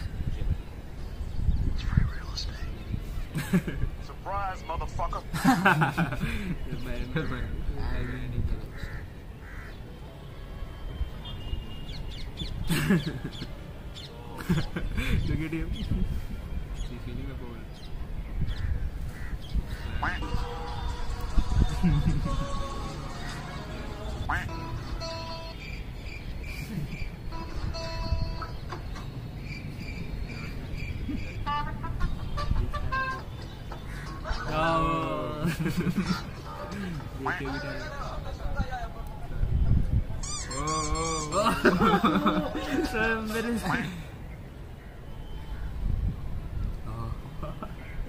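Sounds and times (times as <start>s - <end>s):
crow cawing: 7.9s - 9.8s, 18.5s - 20.3s
background music: 19.8s - 25.6s.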